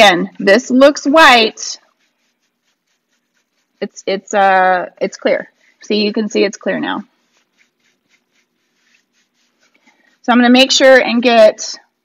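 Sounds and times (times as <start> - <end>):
woman speaking: 0.0 - 1.8, 3.8 - 7.1, 10.2 - 11.9
brush scrubbing wax on wood: 0.4 - 11.3.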